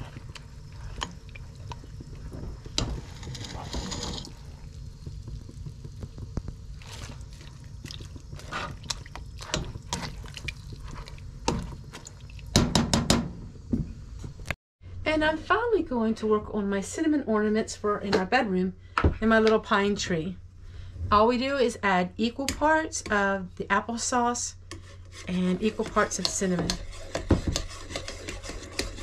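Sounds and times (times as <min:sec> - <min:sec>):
liquid sloshing and dripping: 0:06.7 - 0:12.6.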